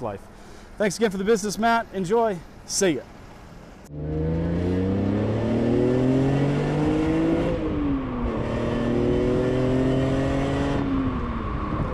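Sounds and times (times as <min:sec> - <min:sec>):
car engine accelerating: 0:03.9 - 0:11.9.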